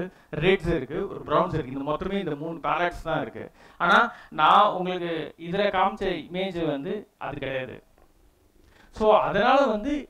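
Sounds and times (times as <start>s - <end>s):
man speaking: 0.0s - 7.9s, 9.0s - 10.0s.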